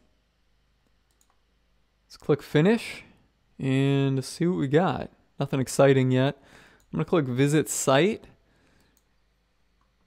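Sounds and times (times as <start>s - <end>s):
faint computer mouse clicks: 0.8s - 1.4s, 8.8s - 9.1s.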